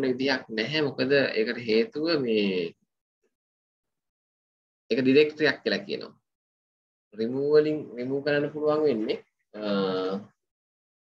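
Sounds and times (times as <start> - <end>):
man speaking: 0.0 - 2.9, 7.2 - 10.5.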